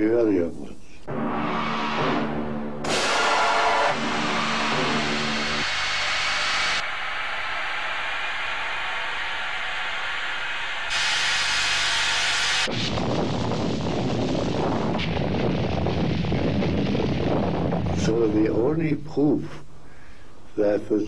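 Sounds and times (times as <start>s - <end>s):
low music notes: 1.1s - 6.0s
rough deep rumble: 12.7s - 18.8s.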